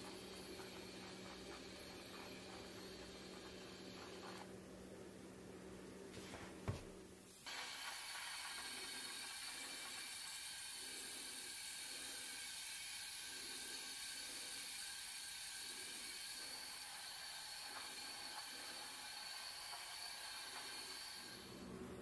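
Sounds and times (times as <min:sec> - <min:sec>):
faint steady tones: 0:00.0 - 0:06.1
air spray rushing hiss: 0:07.4 - 0:21.6.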